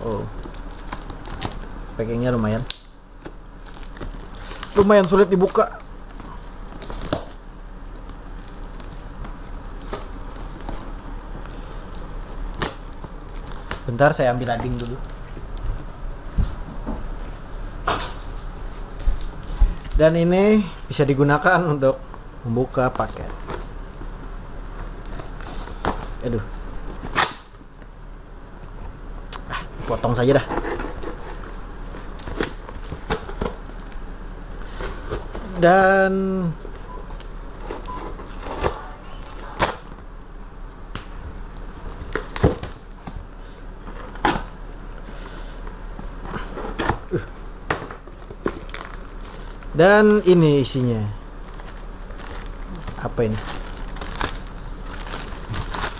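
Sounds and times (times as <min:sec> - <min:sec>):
packing tape peeled off cardboard: 0:26.9 - 0:27.6, 0:30.3 - 0:34.0, 0:51.4 - 0:55.9
tape and cardboard tearing: 0:27.0 - 0:27.6, 0:30.4 - 0:33.7, 0:46.2 - 0:49.5.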